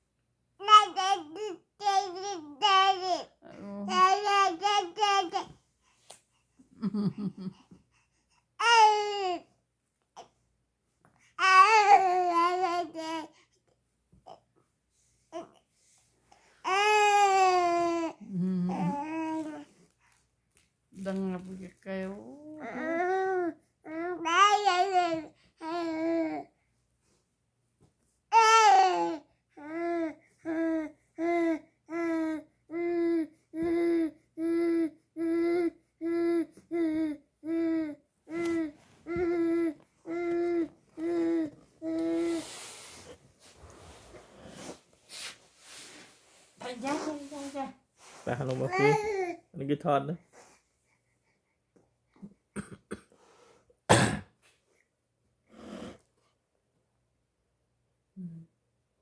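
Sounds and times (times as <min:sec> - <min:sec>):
soft breathy noise: 0:07.4 - 0:08.6, 0:37.9 - 0:48.9, 0:53.1 - 0:53.8.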